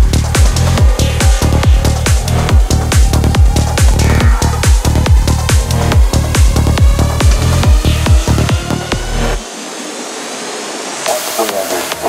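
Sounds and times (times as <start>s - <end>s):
kick drum and bass: 0.0s - 9.4s
synth noise sweep: 0.0s - 12.0s.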